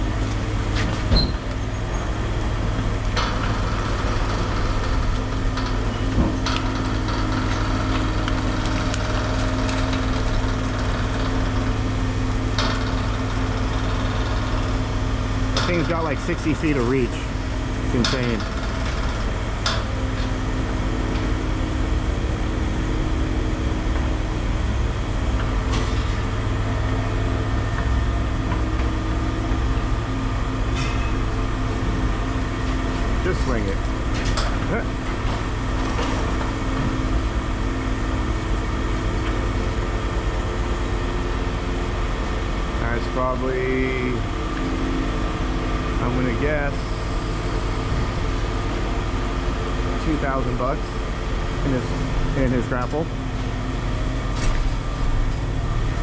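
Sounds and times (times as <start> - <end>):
diesel engines running: 0.0 - 56.0.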